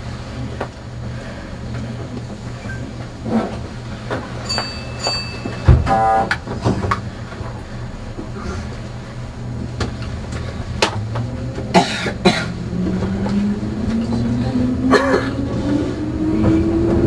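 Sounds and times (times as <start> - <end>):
electric train equipment hum: 0.0 - 17.0.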